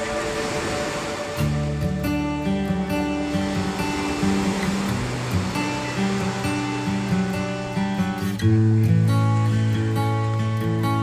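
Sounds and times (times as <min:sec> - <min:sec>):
guitar music: 0:00.0 - 0:11.0
small waves breaking on beach: 0:00.0 - 0:11.0.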